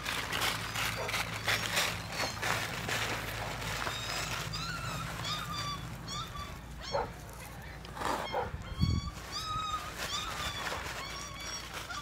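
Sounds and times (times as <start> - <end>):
puppy yipping and whining: 0.4 - 2.9, 3.5 - 12.0.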